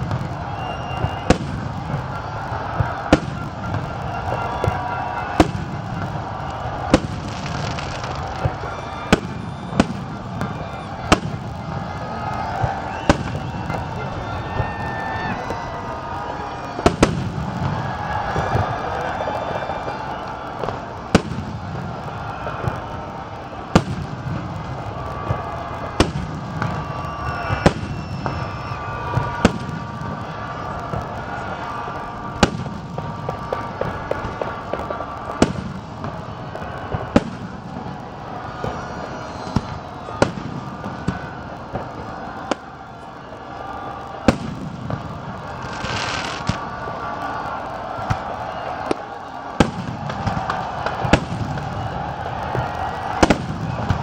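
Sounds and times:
continuous background din: 0.0 - 54.0.

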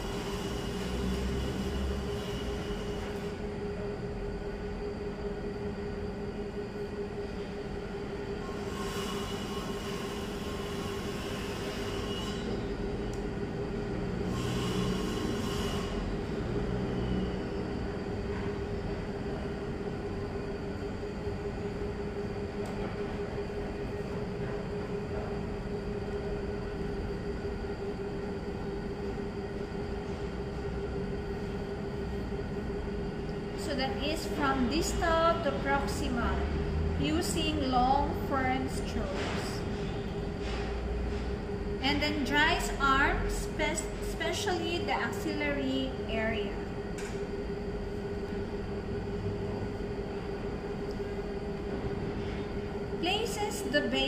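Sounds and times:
mechanical hum with steady tone: 0.0 - 54.0.

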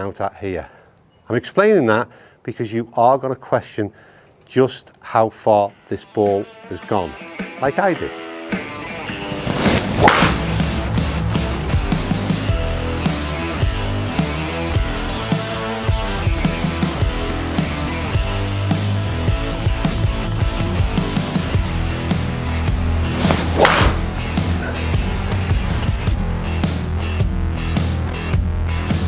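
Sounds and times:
rock music: 6.3 - 29.0
golf club striking ball: 9.8 - 10.6, 23.2 - 24.8.

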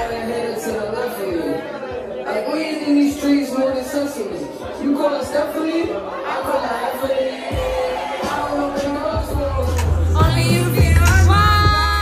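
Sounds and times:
background chatter: 0.0 - 11.1
people talking close: 0.0 - 12.0.

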